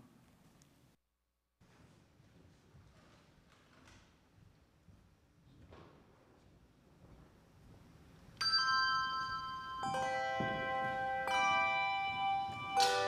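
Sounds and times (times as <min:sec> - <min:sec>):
handbell choir chords ringing: 0:08.4 - 0:13.0.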